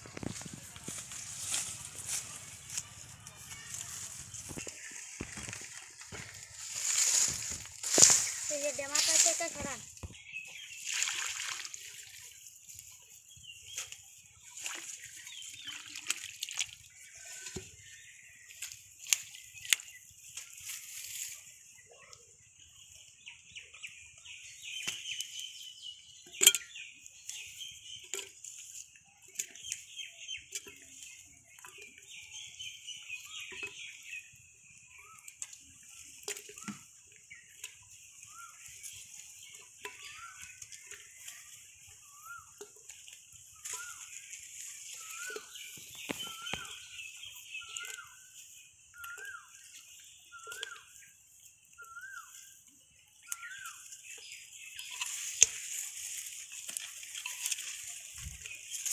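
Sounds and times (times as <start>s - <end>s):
birds calling: 0.0s - 16.3s, 16.9s - 58.9s.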